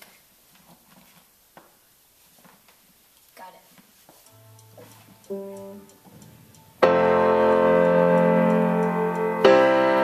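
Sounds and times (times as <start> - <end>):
faint movement sounds: 0.0 - 9.3.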